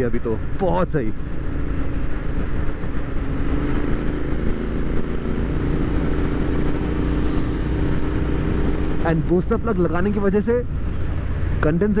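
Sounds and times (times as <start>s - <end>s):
motorcycle engine droning: 1.2s - 10.1s.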